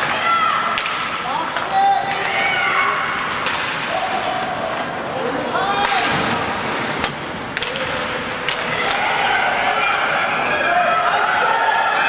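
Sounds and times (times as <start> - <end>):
players and spectators calling out: 0.0 - 6.2, 7.6 - 12.0
hockey sticks cracking on puck: 0.0 - 10.2.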